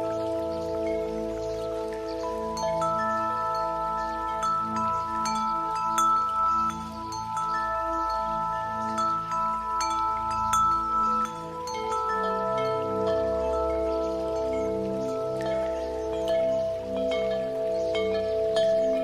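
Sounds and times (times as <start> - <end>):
ambient pad chords: 0.0 - 19.0
wind chimes tinkling: 0.0 - 19.0.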